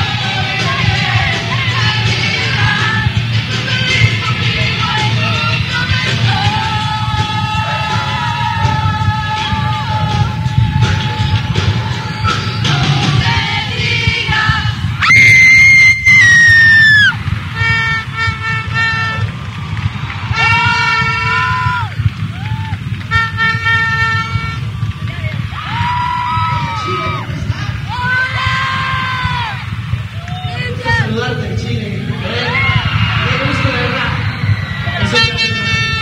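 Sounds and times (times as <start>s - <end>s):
crowd screaming: 0.0s - 36.0s
loud horn-like blasts: 15.9s - 31.6s, 32.4s - 36.0s.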